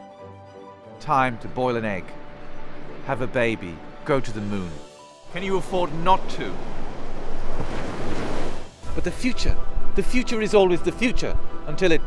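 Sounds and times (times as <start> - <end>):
surf breaking on beach: 5.3 - 9.0.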